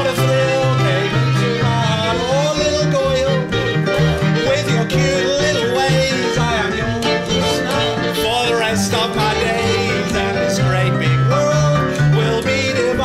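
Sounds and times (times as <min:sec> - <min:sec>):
double bass: 0:00.0 - 0:13.0.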